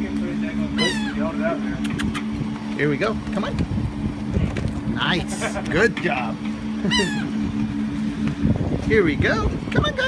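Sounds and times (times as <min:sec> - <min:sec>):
low motor hum: 0:00.0 - 0:10.0
man laughing: 0:05.1 - 0:05.9, 0:06.8 - 0:07.4.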